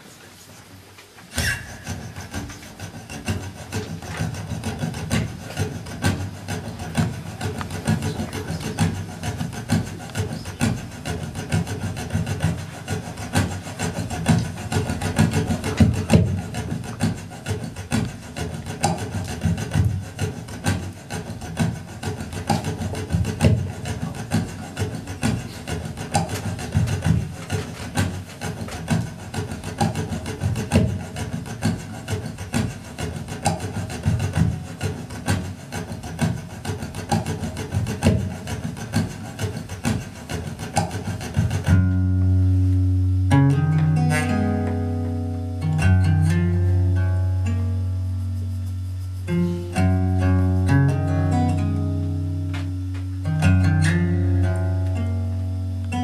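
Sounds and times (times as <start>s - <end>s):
percussive acoustic guitar strokes: 0.0s - 56.0s.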